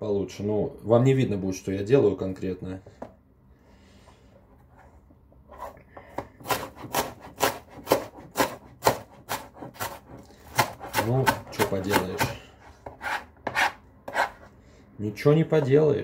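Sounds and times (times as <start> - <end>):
knife chopping on cutting board: 6.1 - 14.4.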